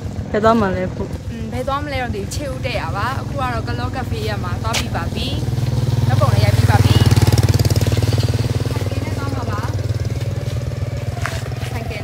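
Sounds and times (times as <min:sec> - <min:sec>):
small motorcycle engine idling: 0:00.0 - 0:12.0.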